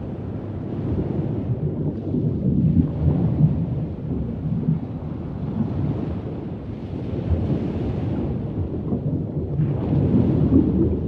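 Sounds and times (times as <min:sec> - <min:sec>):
rumble of moving water: 0:00.0 - 0:11.0.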